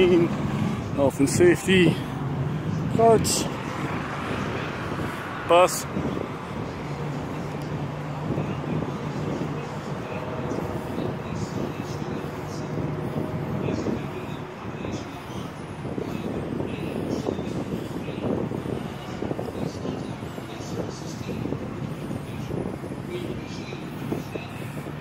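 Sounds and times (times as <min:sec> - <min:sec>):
wind rumbling on microphone: 0:00.0 - 0:25.0.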